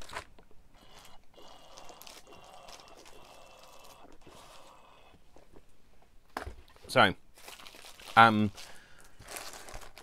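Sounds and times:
person drinking: 0.8 - 5.4.

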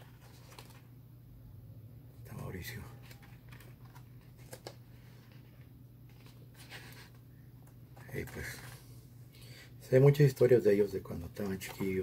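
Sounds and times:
paper pages rustling: 0.0 - 0.9, 3.0 - 9.0
soft clicks of booklet handling: 0.2 - 0.9, 3.0 - 8.8, 11.3 - 12.0.

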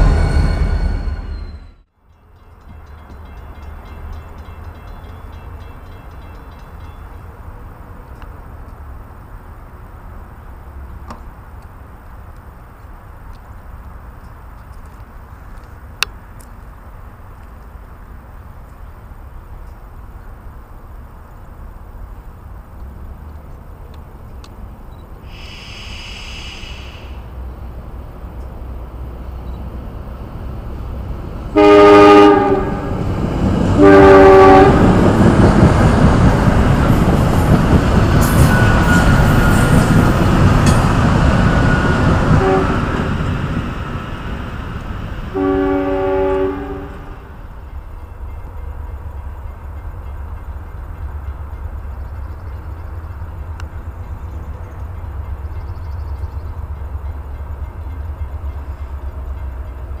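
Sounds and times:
electric train passing: 0.0 - 60.0
train horn blasts: 31.5 - 33.1, 33.8 - 35.0, 41.6 - 43.2, 45.3 - 47.4.

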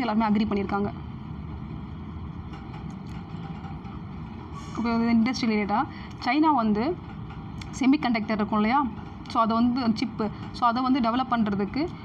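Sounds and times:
faint hum tones: 0.0 - 12.0
low background rumble: 0.0 - 12.0.

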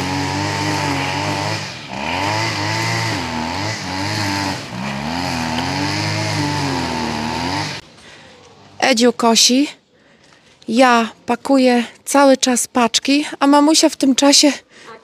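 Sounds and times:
string trimmer cutting grass: 0.0 - 7.8.

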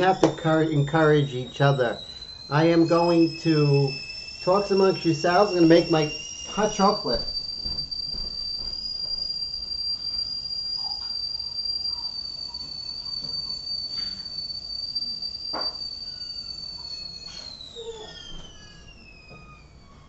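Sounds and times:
kettle whistling: 0.0 - 20.0.

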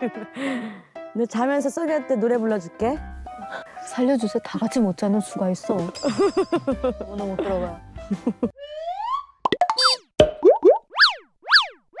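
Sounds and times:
pops and blips: 8.7 - 12.0.

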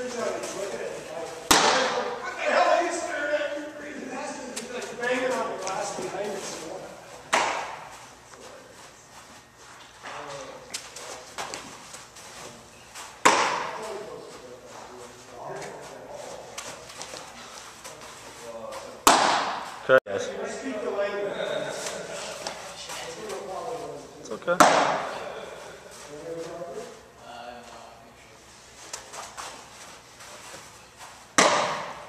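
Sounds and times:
baseball smacks ringing indoors: 1.3 - 2.2, 7.2 - 8.1, 13.0 - 14.0, 19.0 - 19.8, 24.5 - 25.3, 31.3 - 32.0.

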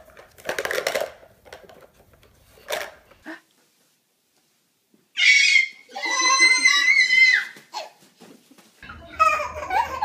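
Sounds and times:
toy clatter: 0.0 - 2.0
baby squealing: 5.2 - 8.0.

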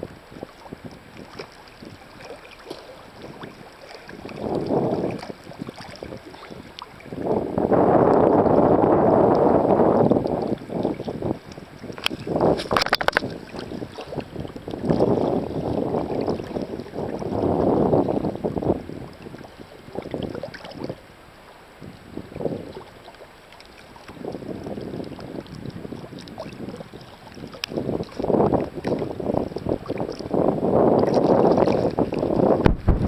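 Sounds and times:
wind buffeting microphone: 0.0 - 21.1, 21.8 - 23.1, 23.9 - 33.0
sea water sloshing and splashing: 0.0 - 33.0.

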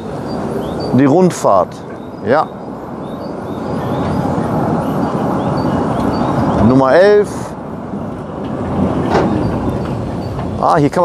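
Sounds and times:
tram wheels rumbling on track: 0.0 - 11.0.

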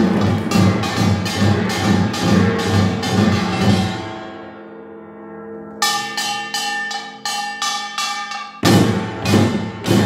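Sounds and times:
gongs ringing: 0.0 - 4.7, 5.6 - 10.0.

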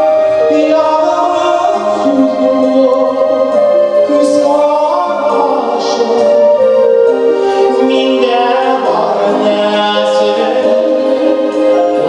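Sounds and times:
man singing into a microphone: 0.4 - 12.0.

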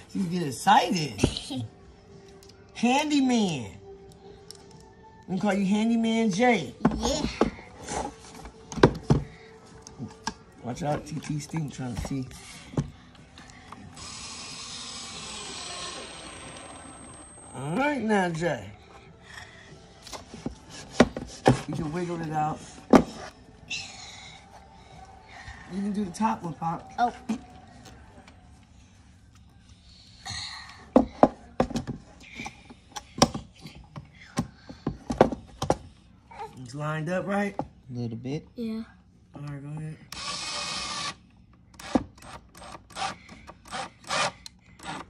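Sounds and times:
cordless drill whirring: 14.0 - 17.6, 40.1 - 41.2, 41.8 - 45.0.

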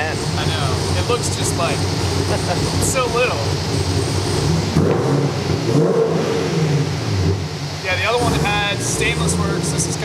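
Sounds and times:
car engine idling and revving: 0.0 - 10.0.

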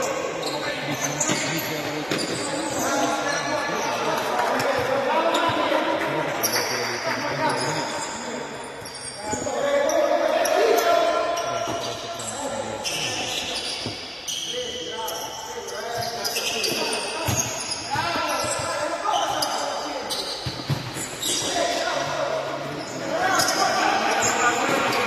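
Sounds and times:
shoes squeaking on floor: 0.0 - 5.7, 7.4 - 22.2.

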